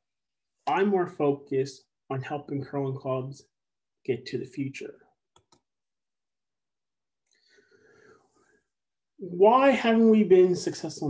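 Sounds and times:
faint breath: 0:07.3 - 0:08.8.

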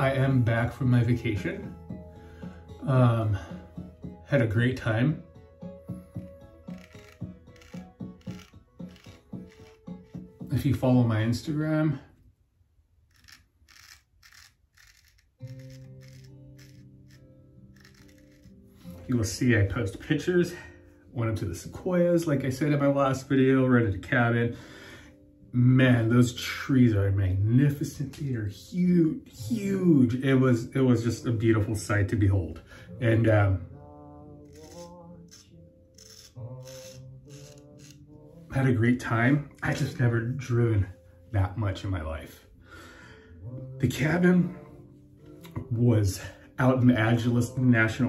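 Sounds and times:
faint background music: 0:00.0 - 0:12.2, 0:13.1 - 0:48.0
razor scraping stubble: 0:05.8 - 0:10.6, 0:13.0 - 0:19.2, 0:34.4 - 0:38.2.

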